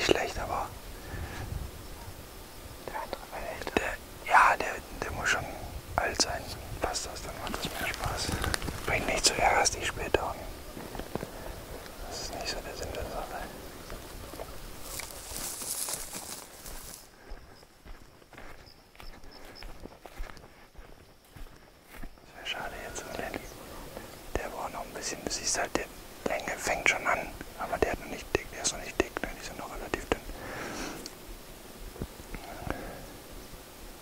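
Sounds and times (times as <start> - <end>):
people whispering: 0.0 - 16.4, 18.4 - 31.1, 32.3 - 33.1
dry grass rustling and crackling: 5.9 - 32.5.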